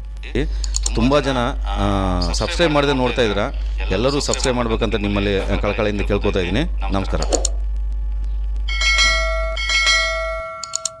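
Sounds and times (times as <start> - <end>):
quick clicks: 0.6 - 1.0, 7.2 - 8.7
bell chime: 8.7 - 11.0.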